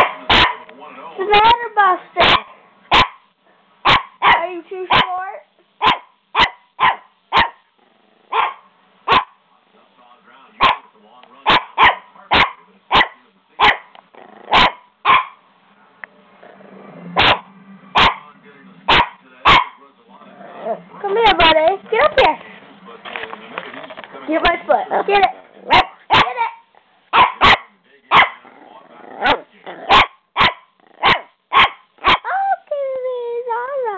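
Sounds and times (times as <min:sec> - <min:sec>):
puppy barking: 0:00.0 - 0:00.7, 0:02.2 - 0:05.2, 0:05.8 - 0:07.7, 0:08.3 - 0:09.4, 0:10.6 - 0:13.9, 0:14.5 - 0:15.4, 0:17.2 - 0:18.3, 0:18.9 - 0:19.8, 0:24.9 - 0:28.4, 0:29.2 - 0:32.3.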